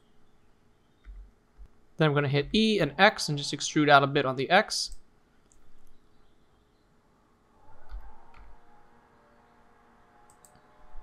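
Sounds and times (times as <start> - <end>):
computer mouse clicks: 4.9 - 6.0, 10.3 - 10.6.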